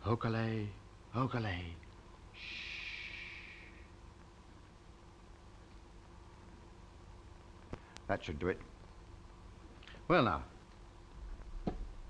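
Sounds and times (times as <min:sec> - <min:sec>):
faint room hum: 0:00.0 - 0:12.0
man's breathy shushing hiss: 0:02.4 - 0:03.9.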